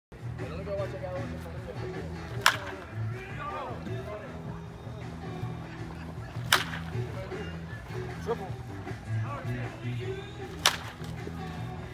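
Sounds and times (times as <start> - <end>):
stadium music: 0.1 - 11.9
baseball bat cracking ball: 2.2 - 3.1, 6.3 - 7.4, 10.4 - 11.5.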